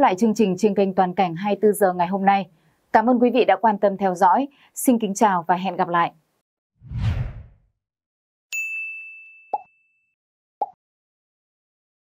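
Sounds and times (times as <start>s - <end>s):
bright bell-like ding: 8.6s - 10.1s.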